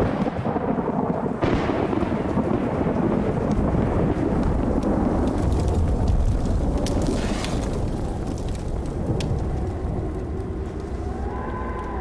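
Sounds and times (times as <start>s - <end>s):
heavy rain: 0.0s - 12.0s
rolling thunder: 0.0s - 12.0s.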